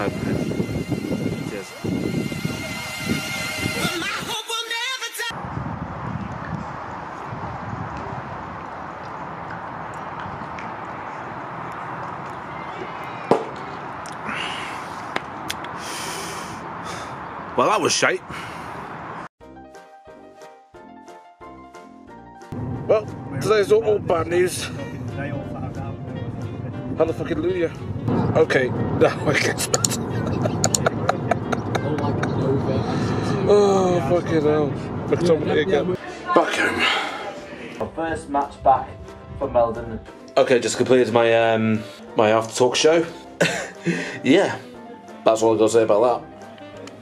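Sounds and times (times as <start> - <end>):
man gulping a drink: 14.0 - 14.4
steady low rumble: 22.6 - 36.0
steady rushing noise: 22.6 - 36.0.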